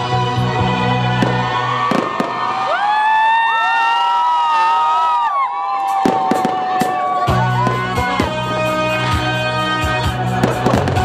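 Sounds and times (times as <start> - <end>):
music: 0.0 - 2.4, 5.9 - 11.0
crowd noise: 0.0 - 11.0
firework whistling: 1.2 - 2.5, 5.8 - 8.3
firework bangs: 1.2 - 2.6, 6.0 - 8.5, 10.4 - 11.0.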